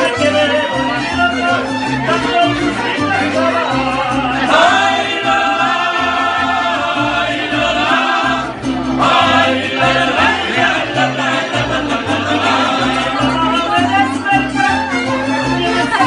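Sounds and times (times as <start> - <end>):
guitars: 0.0 - 16.0
violins: 0.0 - 16.0
pulsing bass line: 2.1 - 16.0
voices singing together: 2.7 - 14.8.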